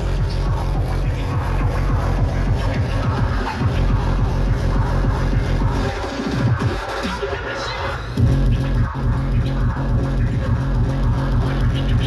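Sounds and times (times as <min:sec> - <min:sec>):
heavy kick drums: 0:00.0 - 0:06.9, 0:08.2 - 0:12.0
electronic dance music: 0:00.0 - 0:12.0.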